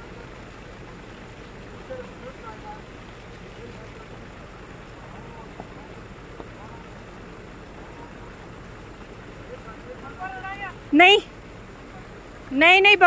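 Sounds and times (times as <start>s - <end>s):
car engine at low revs: 0.0s - 13.0s
faint voices: 0.0s - 13.0s
stream water rushing: 0.0s - 13.0s.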